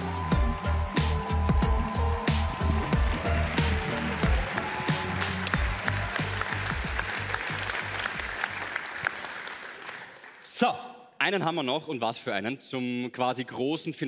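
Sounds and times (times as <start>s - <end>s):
stage music with heavy bass beat: 0.0s - 8.0s
audience applause: 0.0s - 10.5s.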